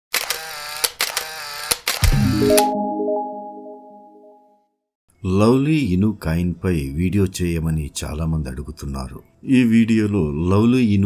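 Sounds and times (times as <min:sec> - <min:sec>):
sharp shutter-like clicks: 0:00.1 - 0:02.2.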